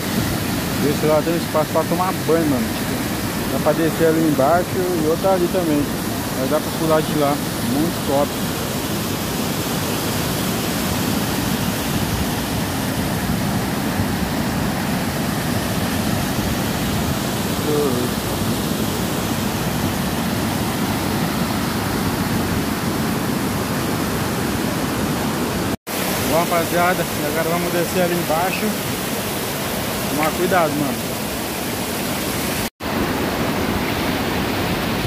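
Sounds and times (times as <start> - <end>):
waterfall rushing: 0.0 - 35.0.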